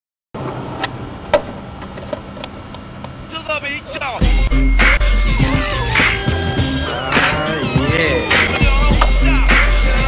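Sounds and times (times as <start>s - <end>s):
skateboard wheels rolling on asphalt: 0.4s - 3.2s
man calling out: 3.3s - 4.2s, 6.9s - 9.5s.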